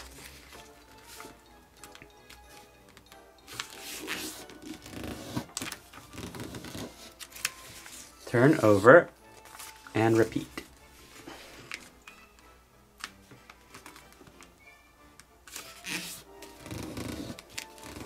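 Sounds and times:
paper rustling and creasing: 0.0s - 2.7s, 3.4s - 12.0s, 13.0s - 14.5s, 15.5s - 18.0s
quiet background music: 0.0s - 18.0s.

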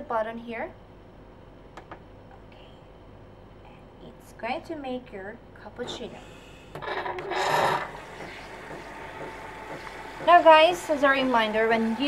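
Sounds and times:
coffee machine humming: 5.9s - 12.0s.

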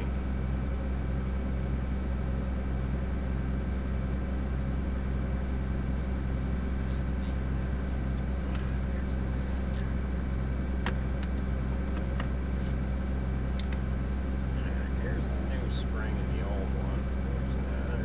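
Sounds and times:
engine running: 0.0s - 18.0s.

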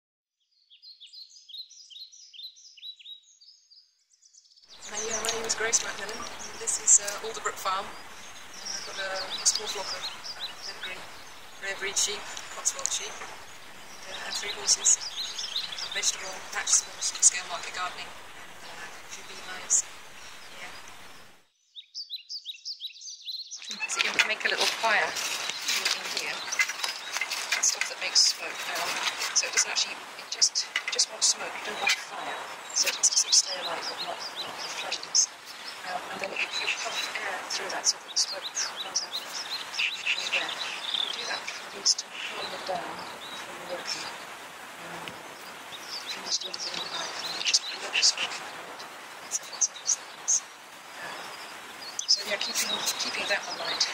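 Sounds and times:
small birds chirping: 0.4s - 53.9s.

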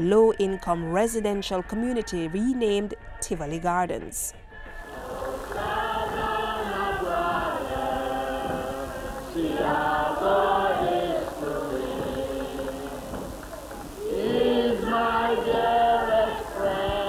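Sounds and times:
choir singing: 4.6s - 17.0s.

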